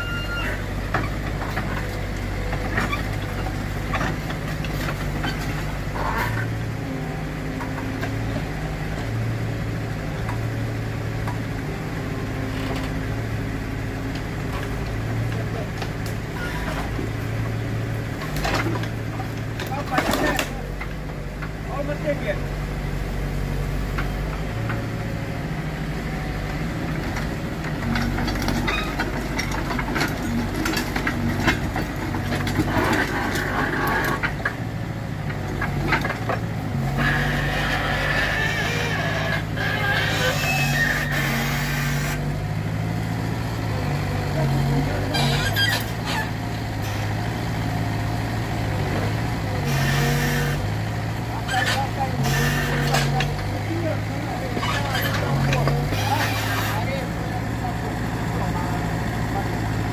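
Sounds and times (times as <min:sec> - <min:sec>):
excavator diesel engine: 0:00.0 - 0:59.9.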